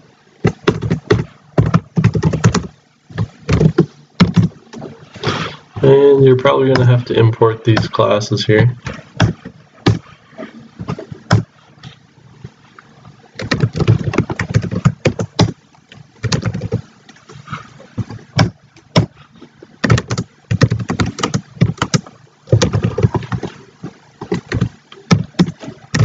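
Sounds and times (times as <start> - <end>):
computer keyboard typing: 0.6 - 2.7, 13.4 - 15.6, 16.2 - 16.8, 19.8 - 23.5.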